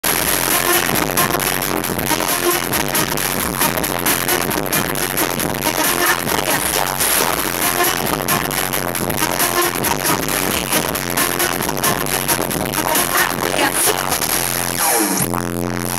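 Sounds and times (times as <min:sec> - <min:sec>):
live horns: 0:00.0 - 0:15.4
loud electronic dance music: 0:00.0 - 0:15.9.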